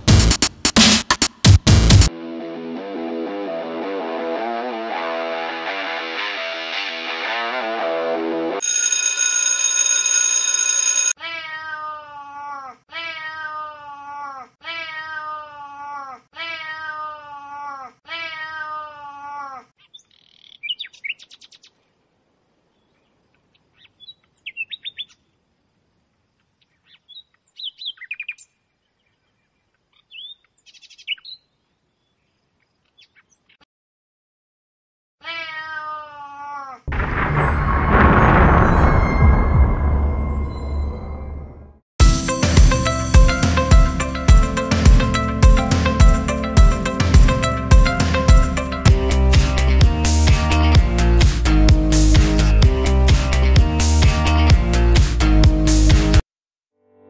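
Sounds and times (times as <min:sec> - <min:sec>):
loud music: 0:00.0 - 0:02.1, 0:42.0 - 0:56.2
cat meowing: 0:35.2 - 0:36.8.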